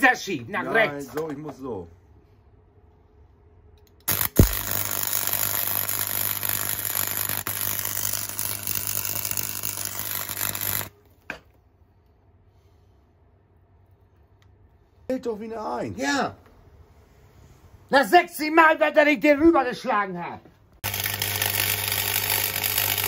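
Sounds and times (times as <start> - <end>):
low electrical hum: 0.0 - 22.6
arc welding crackle: 4.0 - 11.0, 20.8 - 23.0.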